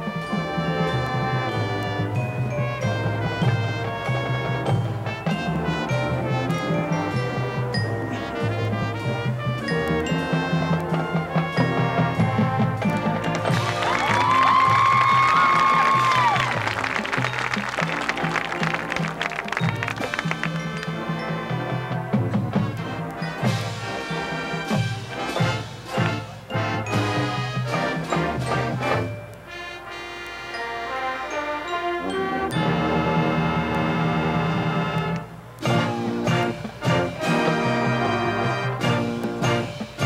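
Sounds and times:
marching band playing: 0.0s - 40.0s.

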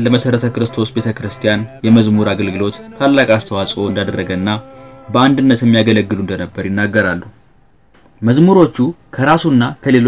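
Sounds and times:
man speaking: 0.0s - 7.3s.

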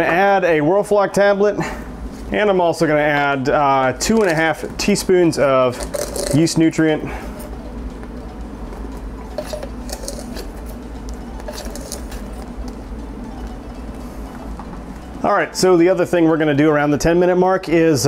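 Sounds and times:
constant low hum: 0.0s - 18.0s
liquid boiling and bubbling: 5.6s - 7.9s, 8.5s - 12.9s.

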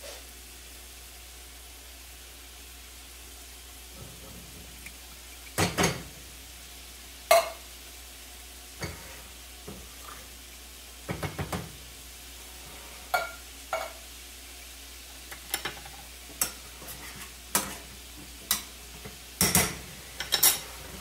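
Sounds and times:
cookware clattering: 5.6s - 6.1s, 7.3s - 7.6s, 13.1s - 14.0s, 15.3s - 17.9s, 19.4s - 20.8s
tin can clinking on saucepan: 7.3s - 7.6s, 13.1s - 14.0s.

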